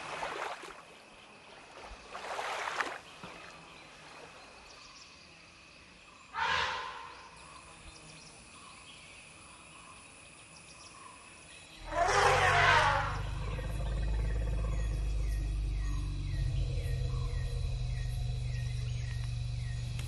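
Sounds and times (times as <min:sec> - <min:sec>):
birds chirping: 0:11.6 - 0:20.0
elephant trumpeting: 0:11.8 - 0:19.3
steady low hum: 0:12.4 - 0:20.0.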